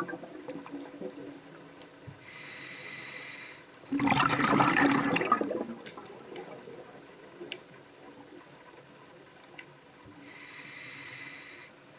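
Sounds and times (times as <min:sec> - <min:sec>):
diver exhaling bubbles through regulator: 0:03.9 - 0:05.8.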